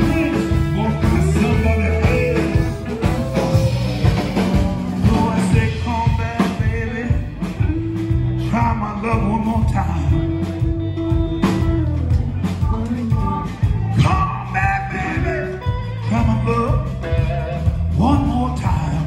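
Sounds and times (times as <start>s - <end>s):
drum beat: 0.0s - 18.9s
electric guitars: 0.0s - 19.0s.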